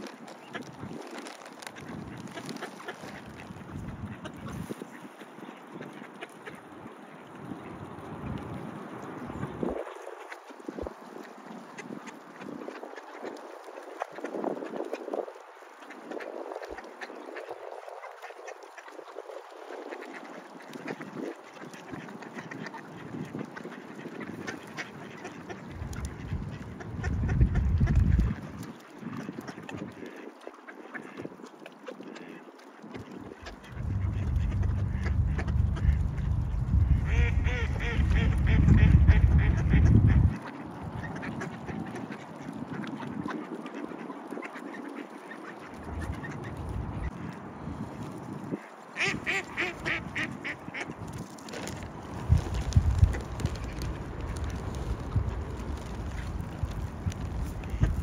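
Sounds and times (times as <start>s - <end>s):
ducks quacking: 0.3s - 7.8s, 19.8s - 47.6s, 48.5s - 51.7s, 55.2s - 58.0s
low rumble: 33.6s - 40.4s.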